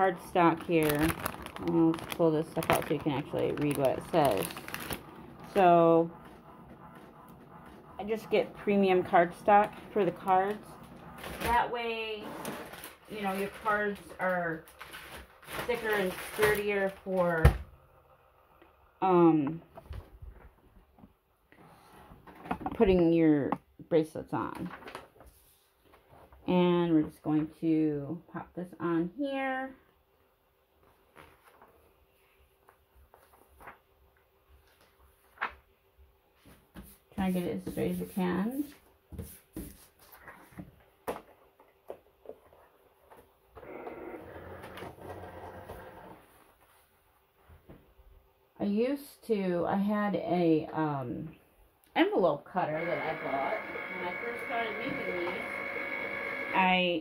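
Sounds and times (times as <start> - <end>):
plastic mat scraping across table: 0.0 - 17.4.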